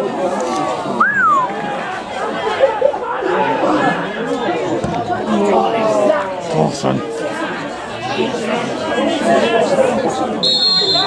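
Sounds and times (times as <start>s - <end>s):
voices shouting and calling: 0.9s - 11.0s
sharp cry: 10.4s - 11.0s.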